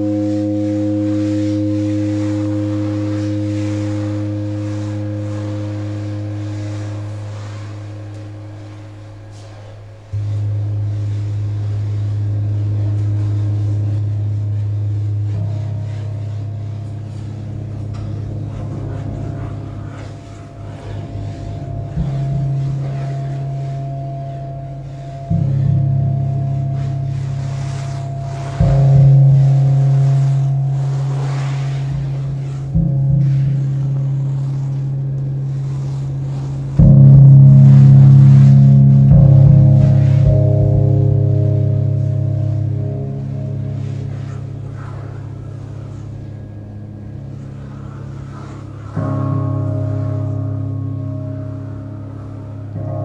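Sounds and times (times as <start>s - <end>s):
electric guitar droning notes: 0.0s - 53.0s.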